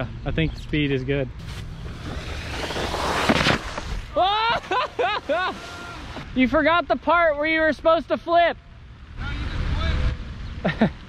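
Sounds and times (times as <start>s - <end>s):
water rushing and splashing: 4.8s - 6.4s.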